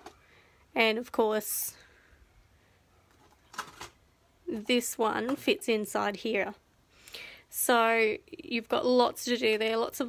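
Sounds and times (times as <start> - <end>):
plastic case rustling: 3.1 - 4.0.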